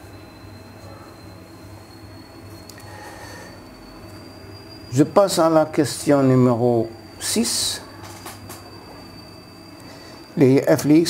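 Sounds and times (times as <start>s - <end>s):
high-pitched whine: 0.0s - 11.0s
steady low hum: 0.0s - 11.0s.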